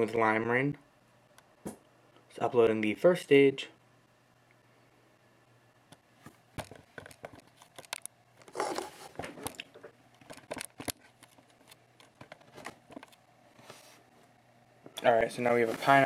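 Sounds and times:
handling clicks and rustles: 6.2 - 13.2.

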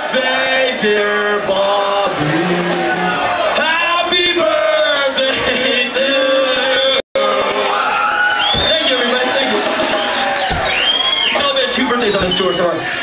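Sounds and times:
voices singing without instruments: 0.0 - 7.6
crowd in a club: 0.0 - 13.0.

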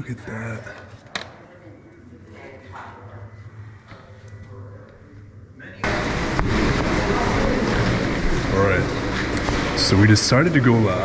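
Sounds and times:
people talking: 0.0 - 0.9, 1.5 - 11.0
loud steady rushing noise: 5.8 - 11.0.

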